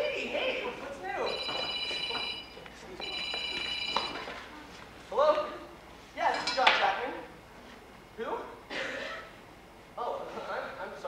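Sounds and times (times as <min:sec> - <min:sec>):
telephone ringing: 0:01.2 - 0:04.4.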